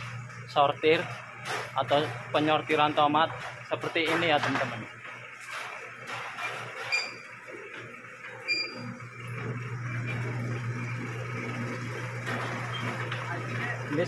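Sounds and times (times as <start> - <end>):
conveyor machine hum: 0.0 - 14.0.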